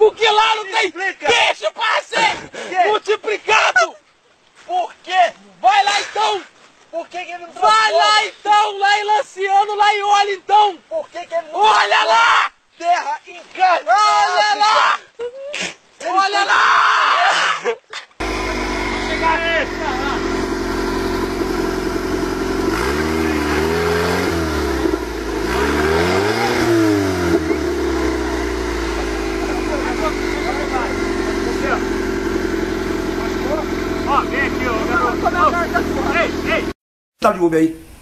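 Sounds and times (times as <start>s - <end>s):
voices shouting: 0.0s - 4.0s, 7.2s - 15.3s, 16.0s - 23.7s, 25.6s - 36.7s
buggy engine revving: 18.2s - 36.7s.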